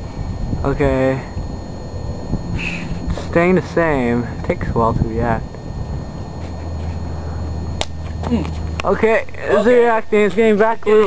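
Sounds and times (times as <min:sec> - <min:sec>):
low rumble: 0:00.0 - 0:08.8
sharp click: 0:07.8 - 0:08.9.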